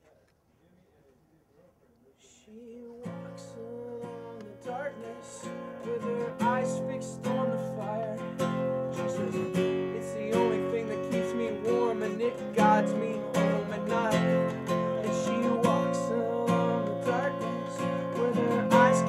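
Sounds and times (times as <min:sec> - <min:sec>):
acoustic guitar strummed: 0:03.0 - 0:19.0.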